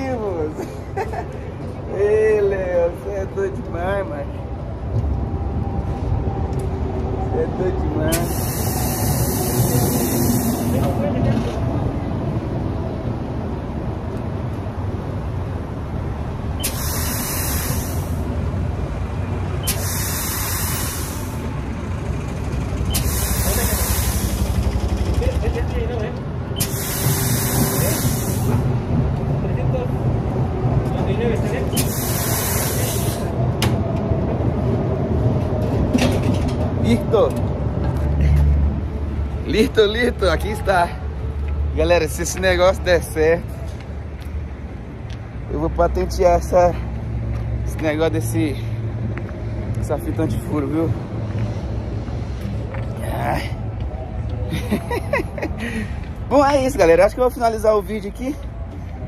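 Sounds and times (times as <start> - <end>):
air hose hissing: 8.1 - 11.0, 16.6 - 18.4, 19.6 - 21.6, 22.9 - 24.6, 26.6 - 28.8, 31.7 - 33.3.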